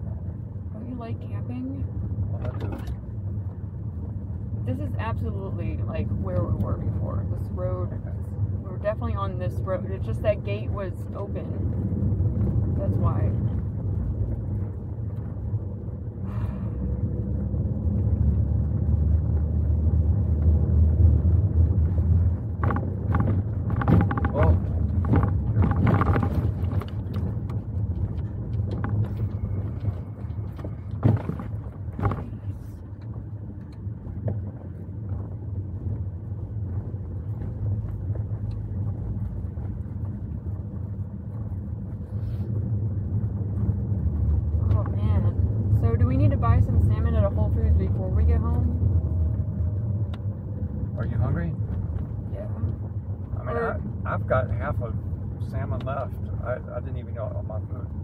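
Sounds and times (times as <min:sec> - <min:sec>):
car engine and tyres rumbling: 0:00.0 - 0:58.0
knocks and rattles: 0:22.4 - 0:33.2.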